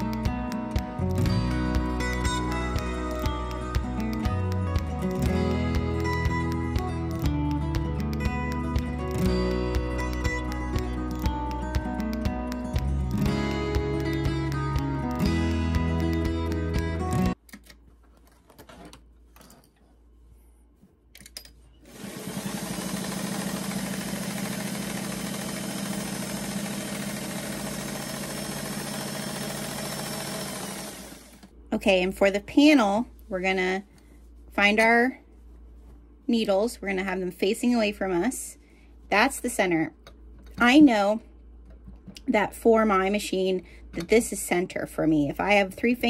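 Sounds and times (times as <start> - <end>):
background music: 0.0 - 17.4
sewing machine running: 21.9 - 31.5.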